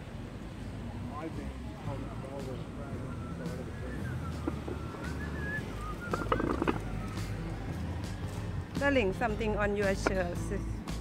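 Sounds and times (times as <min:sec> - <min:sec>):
traffic rumble: 0:00.0 - 0:11.0
birds chirping: 0:03.3 - 0:07.4.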